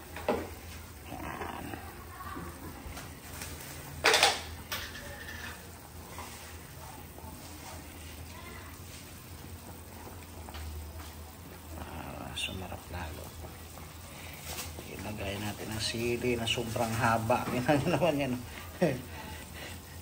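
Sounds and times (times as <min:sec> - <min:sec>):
soup boiling in pot: 0:00.0 - 0:20.0.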